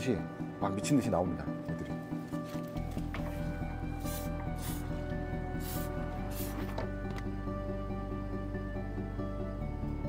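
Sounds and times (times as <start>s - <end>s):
background music: 0.0s - 10.0s
aerosol spray hissing: 3.9s - 6.8s.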